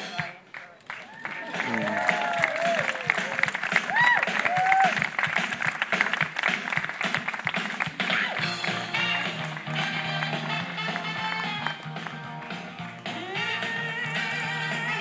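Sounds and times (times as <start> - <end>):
guests clapping: 0.0 - 15.0.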